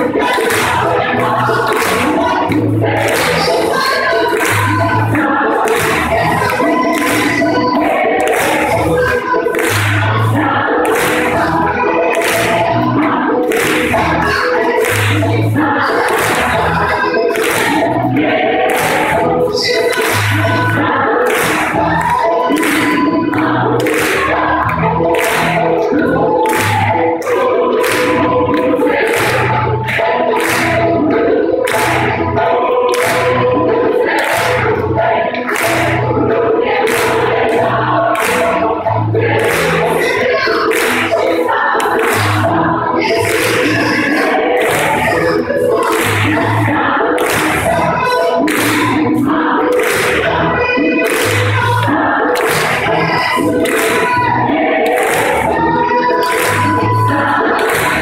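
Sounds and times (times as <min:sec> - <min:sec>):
gospel choir singing: 0:00.0 - 0:58.0
hand claps on the beat: 0:00.0 - 0:58.0.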